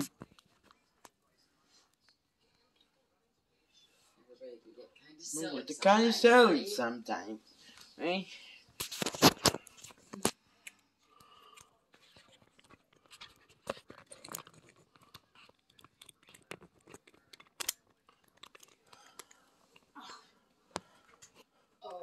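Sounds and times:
small clicks and rustles: 0:11.5 - 0:19.9.

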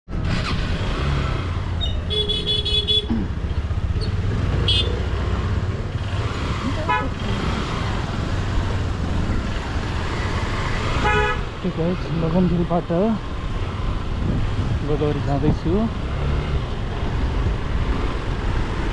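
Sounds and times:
street noise: 0:00.0 - 0:18.9
motorcycle engine running: 0:00.1 - 0:15.1
vehicle horns honking: 0:01.8 - 0:03.3, 0:04.6 - 0:05.0, 0:06.8 - 0:07.5, 0:10.9 - 0:11.6.

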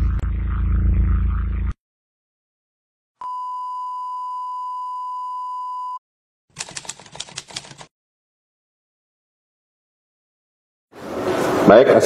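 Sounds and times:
typewriter key clacks: 0:06.6 - 0:07.9.

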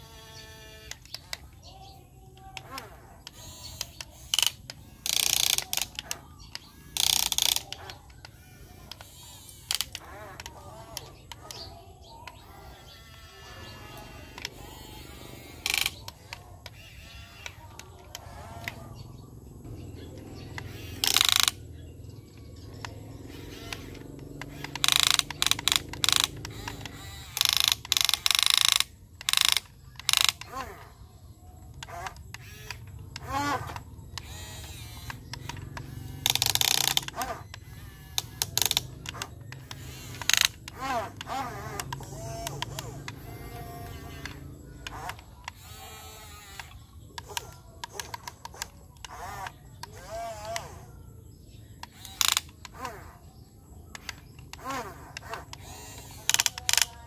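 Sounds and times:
gear rattle bursts: 0:00.0 - 0:57.0
toy excavator gear motors whirring: 0:00.0 - 0:57.0.

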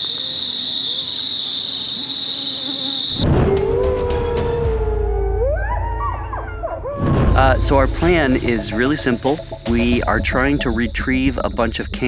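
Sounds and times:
insects trilling: 0:00.0 - 0:03.7, 0:09.0 - 0:12.0
wolf howling: 0:03.0 - 0:08.3
low rumble: 0:03.2 - 0:12.0.

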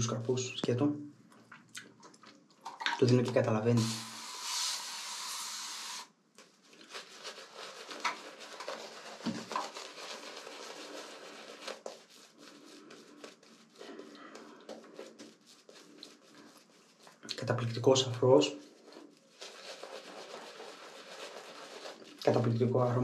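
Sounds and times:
running water hissing: 0:03.7 - 0:06.1.

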